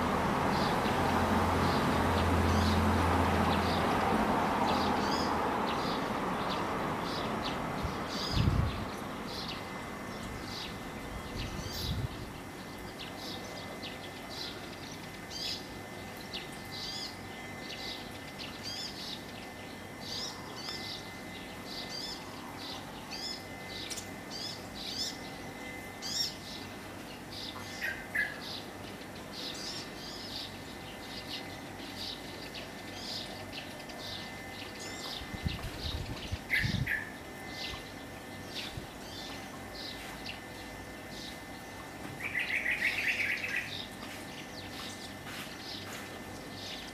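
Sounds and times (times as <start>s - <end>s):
small birds chirping: 0.5s - 46.9s.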